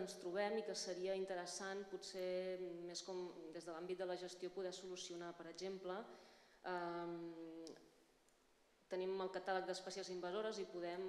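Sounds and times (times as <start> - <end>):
woman speaking: 0.0 - 6.1, 6.7 - 7.8, 8.9 - 11.0.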